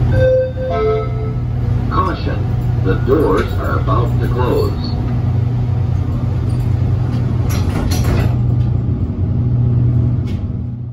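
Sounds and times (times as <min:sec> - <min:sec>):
train low hum: 0:00.0 - 0:10.9
train doors sliding shut: 0:06.0 - 0:08.9, 0:10.1 - 0:10.6.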